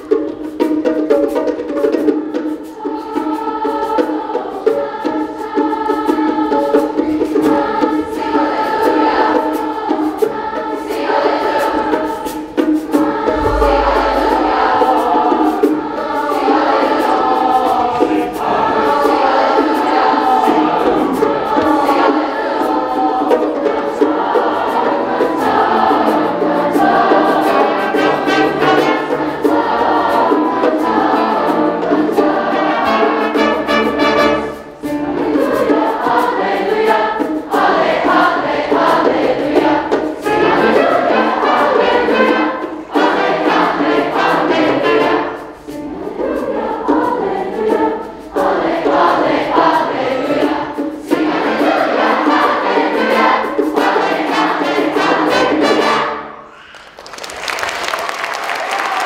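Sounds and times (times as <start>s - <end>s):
choir singing: 0.0s - 57.0s
steady drum beat: 5.6s - 45.3s
piano: 8.1s - 56.6s
saxophones: 8.2s - 56.7s.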